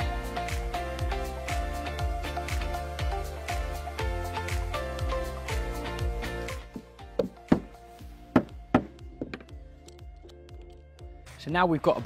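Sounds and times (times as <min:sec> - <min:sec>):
background music: 0:00.0 - 0:12.0
mallet knocking plank: 0:06.7 - 0:09.5.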